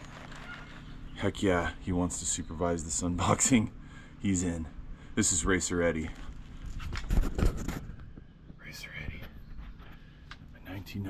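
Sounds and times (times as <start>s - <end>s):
camera handling rustling: 0.0s - 1.0s, 6.2s - 8.2s
faint whisper: 8.6s - 10.0s.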